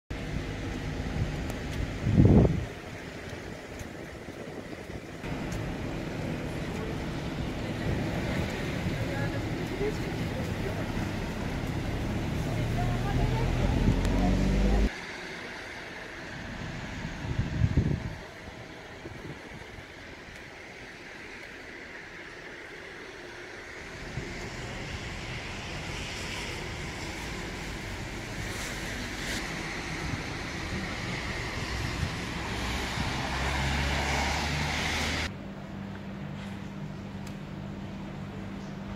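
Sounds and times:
loud low wind buffet: 0.1 - 14.9, 16.2 - 20.7
distant traffic rumble: 0.1 - 38.9
street noise rushing hiss: 0.1 - 38.9
wind on microphone: 1.1 - 5.6, 17.0 - 19.9.

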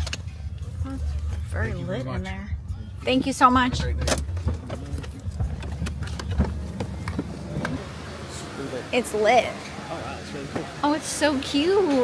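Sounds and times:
car engine rumbling: 0.0 - 12.0
car clicks and knocks: 3.7 - 7.8.

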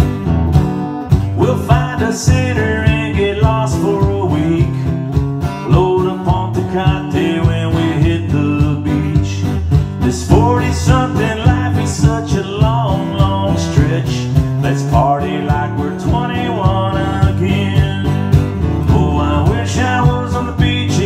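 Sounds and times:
foot-operated kick drum beat: 0.0 - 21.0
strummed acoustic guitar: 0.0 - 21.0.

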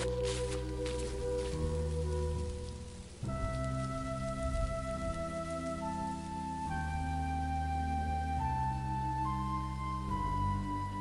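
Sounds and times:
ambient meditation music: 0.0 - 11.0
soft steady hiss: 0.0 - 11.0.

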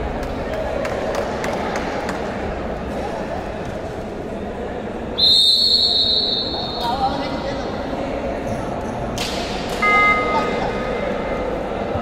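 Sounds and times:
murmur of voices: 0.0 - 12.0
referee's whistle blasts: 5.2 - 7.0.

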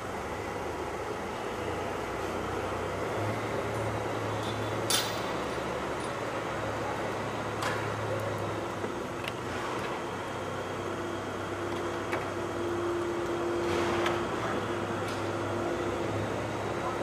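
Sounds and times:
indoor arena hum: 0.0 - 17.0.

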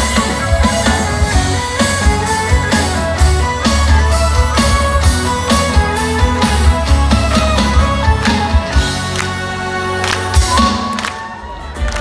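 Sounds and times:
steady drum beat: 0.0 - 9.2
metal band playing live: 0.0 - 12.0.

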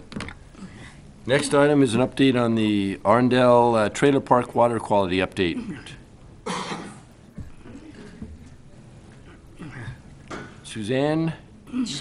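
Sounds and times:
person coughing: 5.6 - 8.2.

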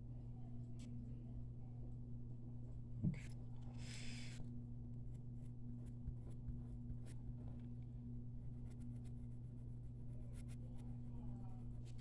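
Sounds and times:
steady low hum: 0.0 - 12.0
pen scratching on paper: 5.8 - 7.6, 8.6 - 11.0.

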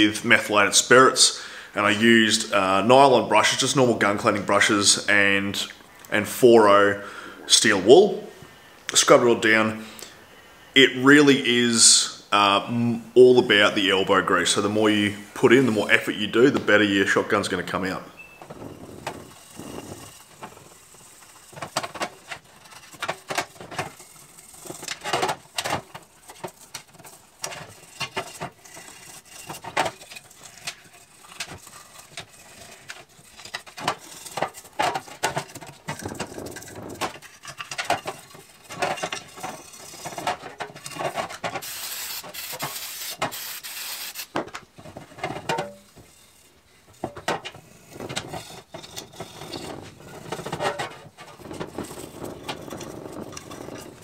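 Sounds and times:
brush scrubbing metal parts: 18.5 - 54.0
aerosol spray hissing: 41.6 - 44.3.

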